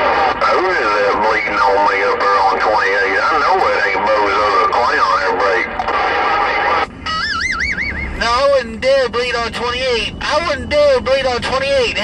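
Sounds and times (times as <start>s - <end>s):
voice wailing over radio speaker: 0.0s - 12.0s
warbling tone: 7.0s - 8.5s.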